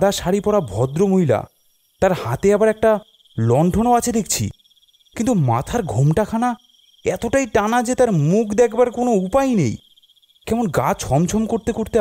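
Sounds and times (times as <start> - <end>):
man speaking: 0.0 - 4.5, 5.2 - 9.8, 10.5 - 12.0
crickets chirping: 0.0 - 12.0.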